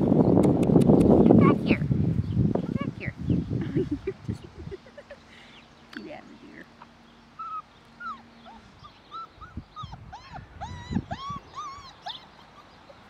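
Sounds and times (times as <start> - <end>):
puppy whining: 7.4 - 13.0.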